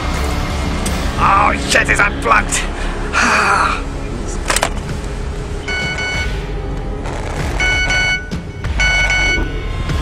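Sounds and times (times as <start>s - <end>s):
low ominous music drone: 0.0s - 10.0s
mobile phone ringing: 7.6s - 9.5s.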